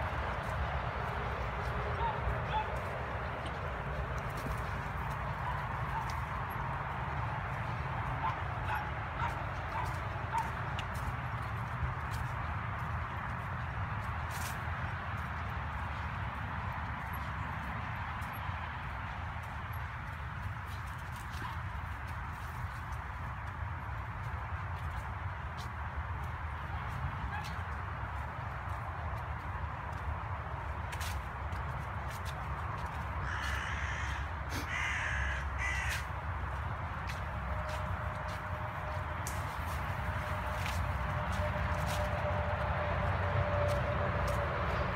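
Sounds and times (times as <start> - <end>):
footsteps on dry leaves: 0.0 - 44.9
dog yipping: 2.0 - 2.8.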